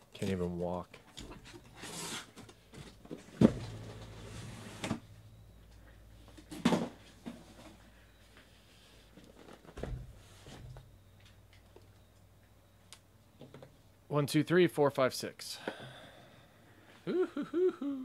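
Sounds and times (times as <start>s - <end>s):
cardboard scraping: 1.7s - 2.4s
cardboard boxes knocking and thumping: 2.8s - 4.2s.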